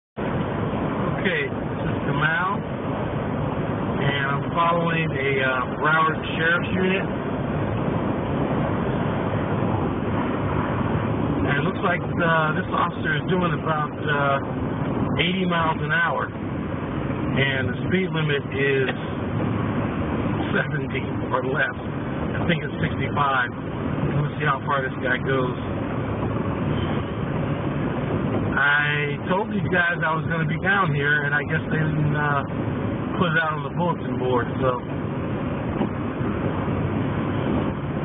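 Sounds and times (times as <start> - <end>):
road and wind noise inside car: 0.2 - 38.0.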